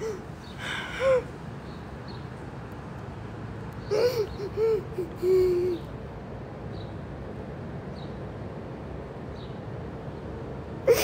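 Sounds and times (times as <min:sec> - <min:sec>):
woman sobbing: 0:00.0 - 0:01.3, 0:03.9 - 0:05.9.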